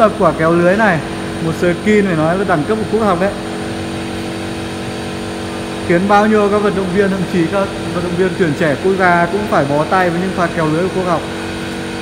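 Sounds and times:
person speaking: 0.0s - 3.5s, 5.8s - 11.4s.

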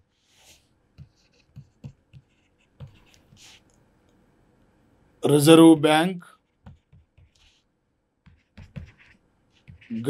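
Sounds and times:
pen scratching strokes: 0.1s - 3.8s, 6.4s - 10.0s.

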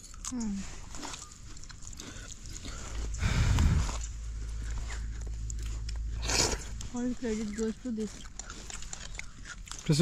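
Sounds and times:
chewing: 0.0s - 10.0s
fingers on foil plate: 4.0s - 10.0s.

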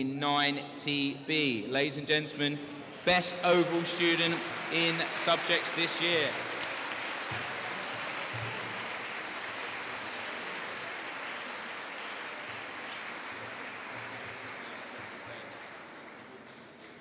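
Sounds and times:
audience applauding: 3.0s - 17.0s.

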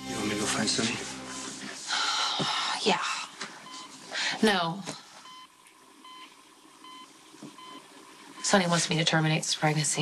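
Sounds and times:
patient monitor beeping: 3.6s - 4.0s, 5.2s - 8.7s.

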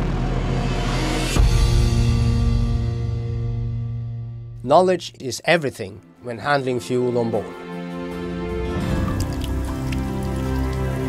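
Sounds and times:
background music: 0.0s - 11.0s
water-drop sound effects: 8.8s - 11.0s.

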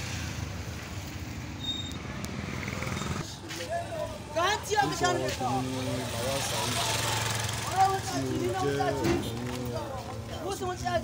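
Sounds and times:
road noise: 0.0s - 11.0s.

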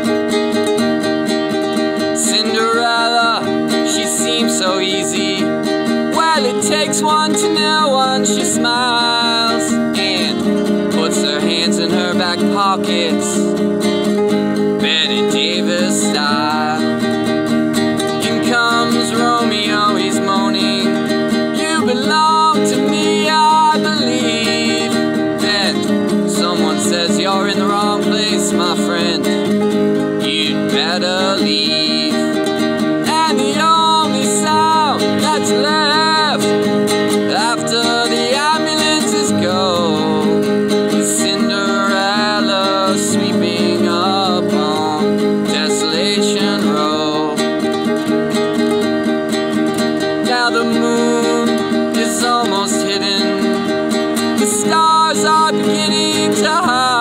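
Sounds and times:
classical guitar playing: 0.0s - 57.0s
man singing: 1.8s - 13.8s, 14.7s - 17.2s, 18.0s - 47.8s, 50.0s - 57.0s.

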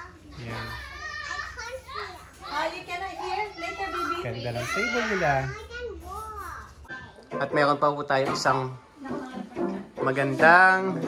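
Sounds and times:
young child talking: 5.5s - 6.9s.

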